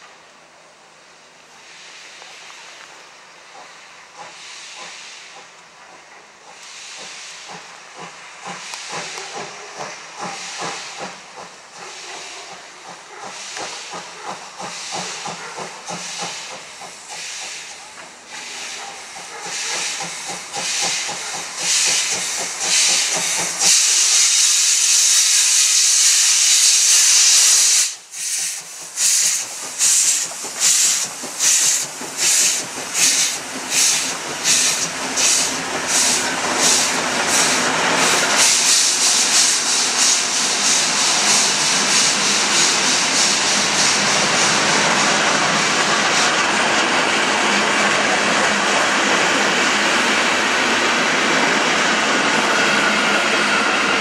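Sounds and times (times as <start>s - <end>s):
steam hissing: 1.4s - 54.0s
steam locomotive chuffing: 3.3s - 54.0s.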